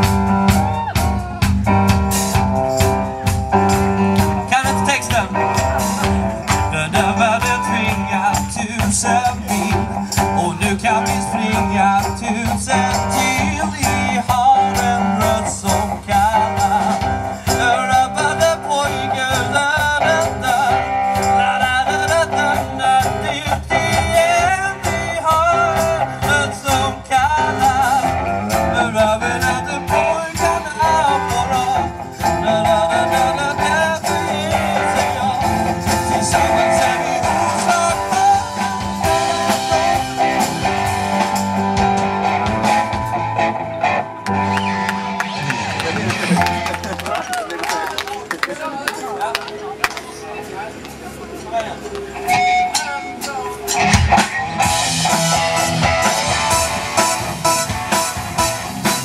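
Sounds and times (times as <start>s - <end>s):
drum kit beat: 0.0s - 47.5s, 52.0s - 59.0s
bass guitar: 0.0s - 48.3s, 49.3s - 59.0s
electric guitars: 0.0s - 59.0s.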